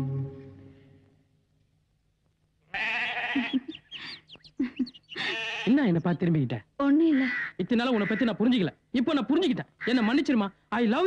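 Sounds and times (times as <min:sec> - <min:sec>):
goat bleating: 0:02.7 - 0:03.9, 0:05.1 - 0:05.9
short chirping sounds: 0:03.4 - 0:05.5.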